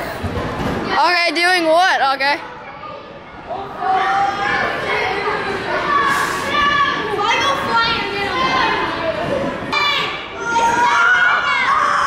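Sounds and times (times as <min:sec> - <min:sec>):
children shouting in echoing hall: 0:02.6 - 0:09.0, 0:09.7 - 0:12.0.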